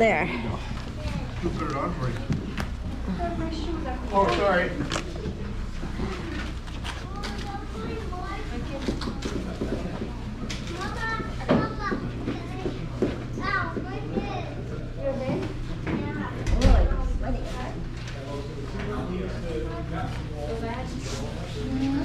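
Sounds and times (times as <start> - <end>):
chatter of adults and children: 0.0 - 22.0
steady low hum: 12.0 - 22.0
heavy low thump: 16.4 - 17.8.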